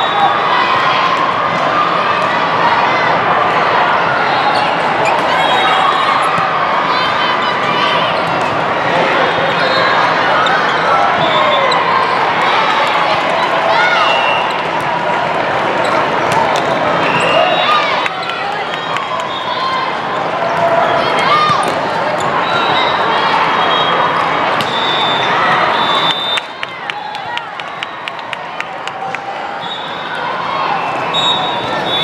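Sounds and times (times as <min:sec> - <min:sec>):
many overlapping voices: 0:00.0 - 0:32.0
sneaker squeaks: 0:04.5 - 0:06.5, 0:20.5 - 0:23.0, 0:23.6 - 0:26.4
volleyballs being hit and bouncing: 0:14.6 - 0:16.9, 0:20.6 - 0:22.4, 0:24.5 - 0:24.8.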